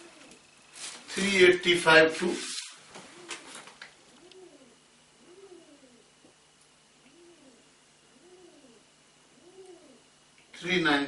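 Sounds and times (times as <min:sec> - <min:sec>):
pigeon cooing: 0:00.0 - 0:00.5, 0:03.0 - 0:06.4, 0:07.0 - 0:10.2.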